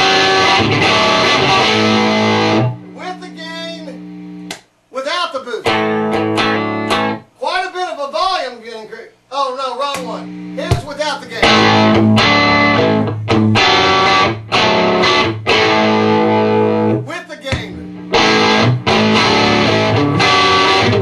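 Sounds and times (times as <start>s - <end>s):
distorted electric guitar chords: 0.0s - 4.5s, 5.7s - 7.3s, 11.4s - 17.1s, 17.7s - 21.0s.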